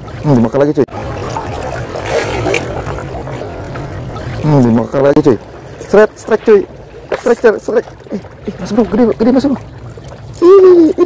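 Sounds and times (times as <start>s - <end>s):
seawater surging and splashing: 0.0s - 11.0s.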